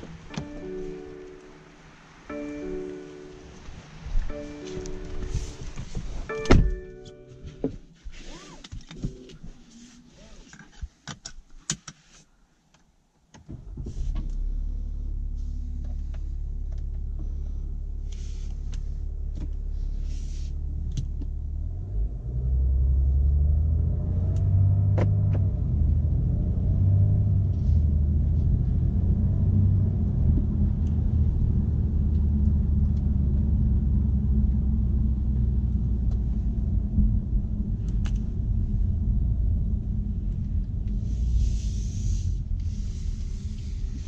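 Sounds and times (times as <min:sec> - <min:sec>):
car engine rumble from inside: 0:00.0 - 0:10.8, 0:13.5 - 0:44.0.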